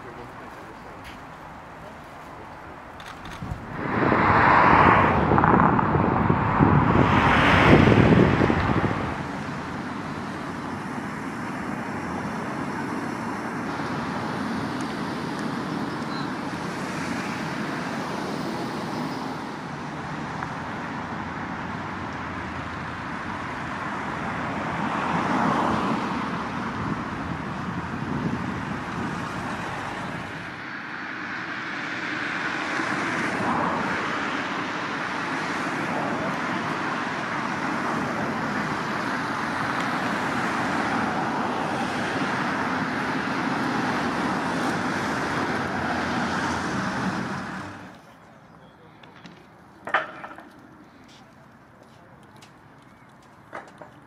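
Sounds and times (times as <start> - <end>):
cars passing on busy street: 0.0 - 54.0.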